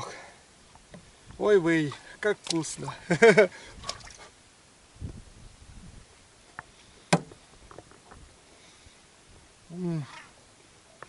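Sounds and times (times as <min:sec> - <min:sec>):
man's wordless exclamation: 0:09.7 - 0:10.2.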